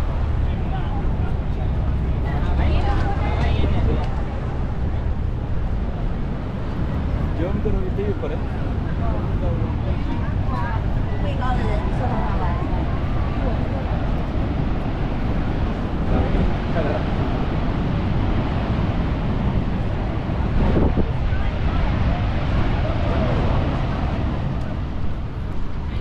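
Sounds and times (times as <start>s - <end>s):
waterfall roaring: 0.0s - 26.0s
wind buffeting microphone: 0.0s - 26.0s.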